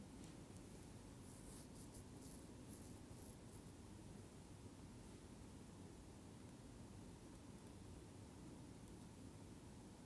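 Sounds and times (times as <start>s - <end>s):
faint high scratchy sounds: 0.0s - 4.0s.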